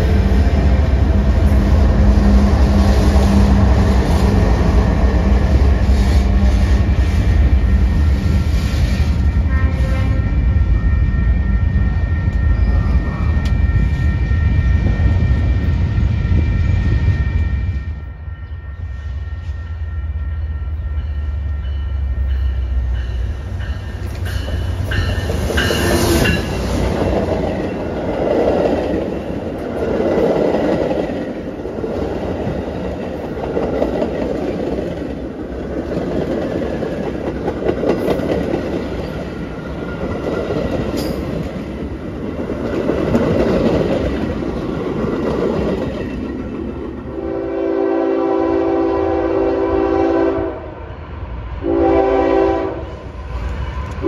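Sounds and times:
train wheels rumbling on rails: 0.0 - 54.0
train horn: 9.0 - 11.6, 47.1 - 50.9, 51.6 - 53.1.

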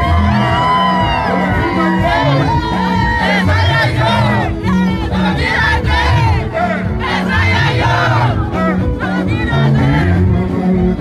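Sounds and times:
bass line: 0.0 - 11.0
crowd singing and shouting: 0.0 - 11.0
live band playing: 0.0 - 11.0.

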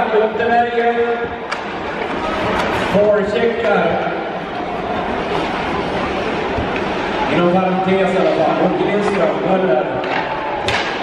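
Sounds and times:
crowd in a large hall: 0.0 - 11.0.

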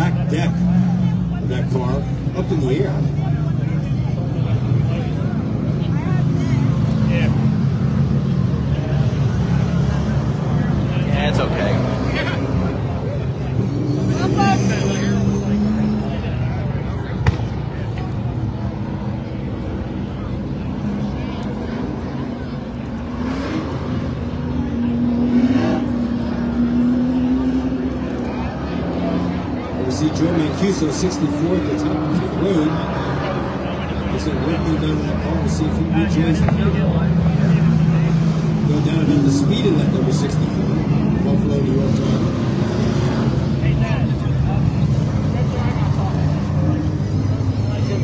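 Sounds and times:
people talking: 0.0 - 48.0
race car engines droning: 0.0 - 48.0.

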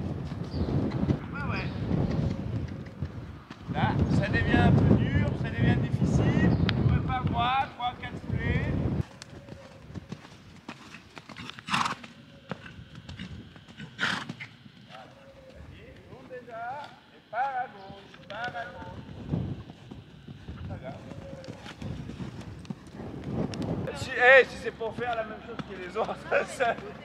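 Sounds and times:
horse hooves trotting on sand: 0.0 - 5.0, 8.0 - 27.0.

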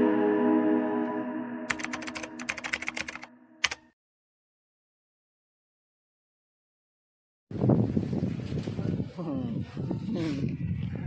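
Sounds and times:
music held notes: 0.0 - 2.7
keyboard typing clicks: 1.7 - 3.9.

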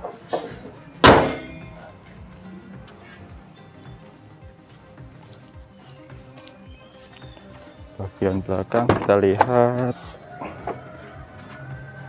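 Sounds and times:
car bonnet slammed shut: 1.0 - 1.6, 8.8 - 9.2.

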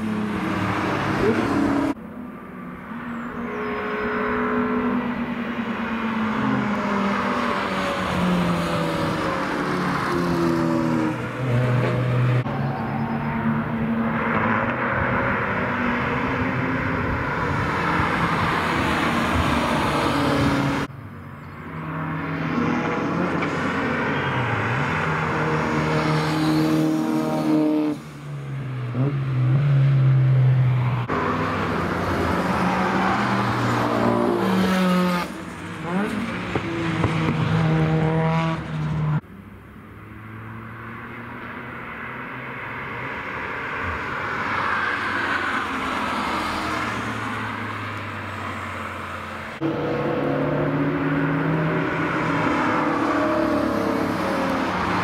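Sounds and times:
race cars passing: 0.0 - 55.0.

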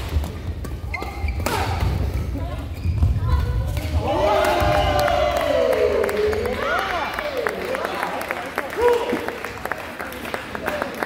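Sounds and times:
shoes squeaking on court: 0.7 - 3.6.

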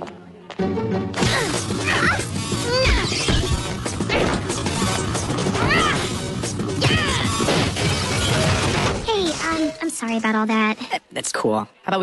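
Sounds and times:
action music: 0.6 - 9.9.

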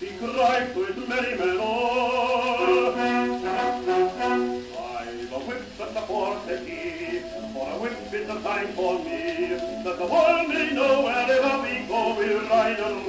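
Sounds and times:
old record of man singing: 0.0 - 13.0.

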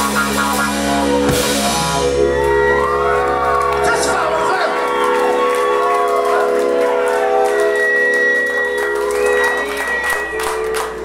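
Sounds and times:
scattered clapping: 3.5 - 11.0.

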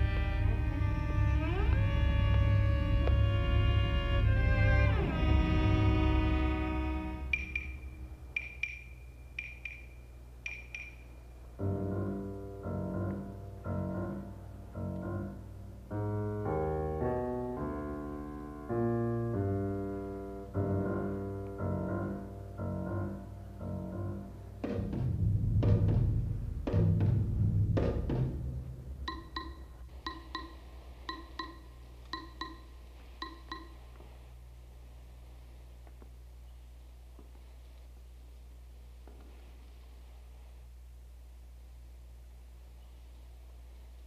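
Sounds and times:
slow piano notes: 0.0 - 34.1
high pinging notes: 7.2 - 11.2, 29.0 - 33.9.

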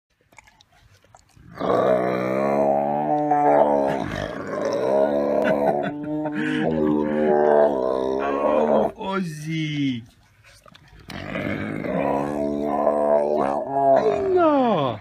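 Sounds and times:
tiger growling: 1.2 - 9.0, 10.9 - 15.0.

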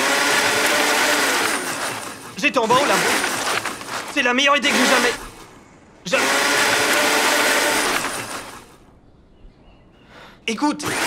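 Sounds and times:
blender running: 0.0 - 5.4, 6.1 - 8.8, 10.8 - 11.0.

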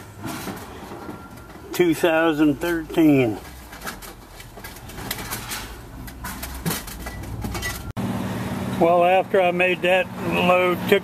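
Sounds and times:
man speaking: 1.7 - 3.5, 8.8 - 11.0.

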